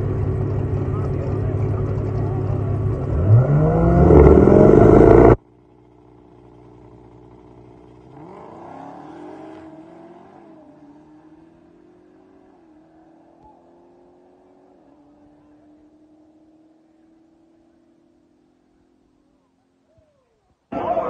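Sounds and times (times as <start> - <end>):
car engine revving: 0.0 - 19.4.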